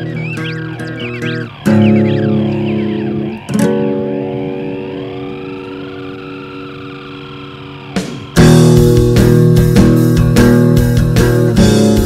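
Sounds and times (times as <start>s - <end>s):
sweeping effect: 0.0s - 11.2s
guitar chord ringing: 0.0s - 12.0s.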